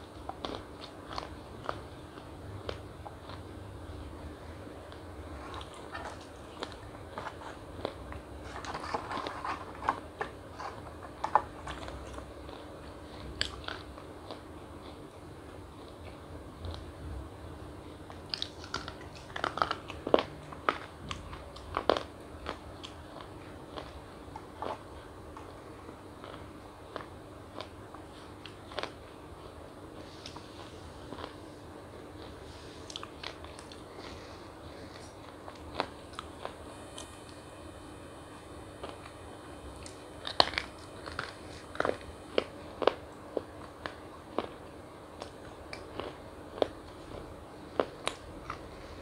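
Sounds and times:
crunchy chocolate chewing: 0.0 - 16.9, 17.8 - 37.4, 38.7 - 49.0.

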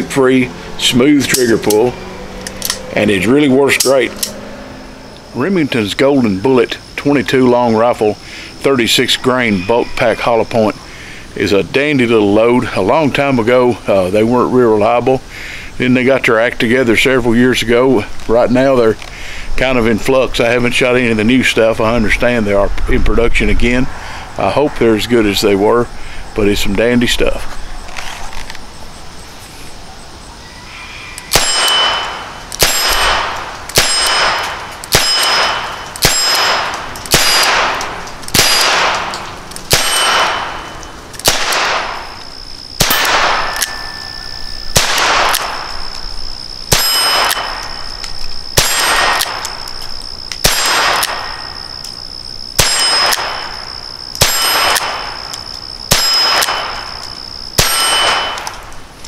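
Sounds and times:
ringing metallic clang: 30.5 - 41.1, 42.8 - 44.8, 46.7 - 49.8, 50.4 - 51.9, 52.6 - 58.7.

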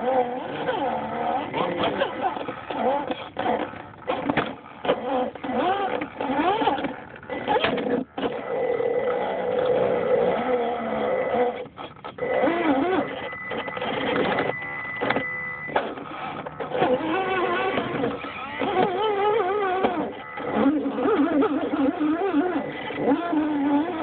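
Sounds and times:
rc car motor whirring: 0.0 - 24.0.

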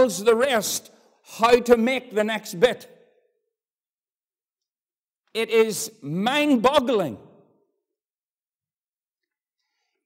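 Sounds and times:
man's voice: 0.0 - 3.0, 5.4 - 7.4.

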